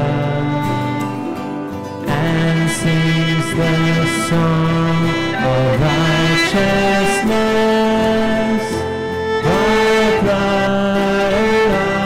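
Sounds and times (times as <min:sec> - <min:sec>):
strings accompaniment: 0:00.0 - 0:12.0
congregation singing a hymn: 0:02.5 - 0:08.8.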